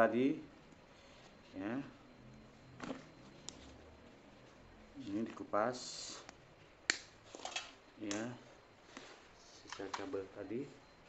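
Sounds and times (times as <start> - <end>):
faint clicks of wires handled: 8.9 - 10.2.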